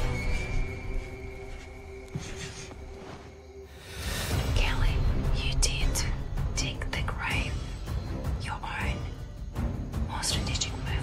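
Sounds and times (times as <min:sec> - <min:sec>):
background music with low drone: 0:00.0 - 0:11.0.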